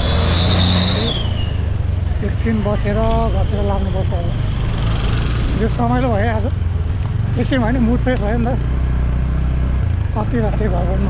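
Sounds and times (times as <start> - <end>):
motorbike and car engines passing: 0.0 - 11.0.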